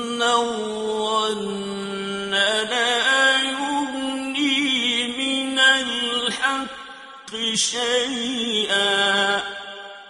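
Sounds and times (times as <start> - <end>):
man chanting recitation: 0.0 - 9.9.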